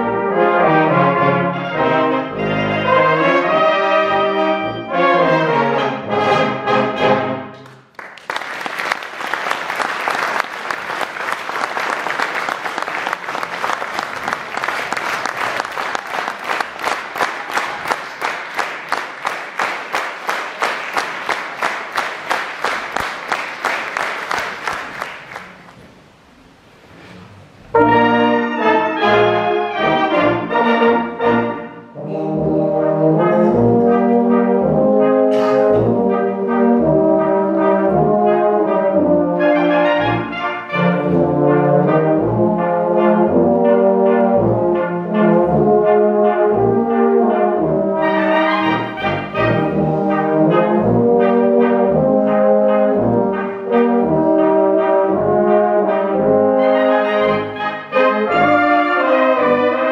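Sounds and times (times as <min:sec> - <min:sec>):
brass band playing a waltz: 0:00.0 - 0:07.6, 0:27.3 - 0:59.9
clapping in time: 0:07.5 - 0:25.8
audience applause: 0:07.6 - 0:26.0.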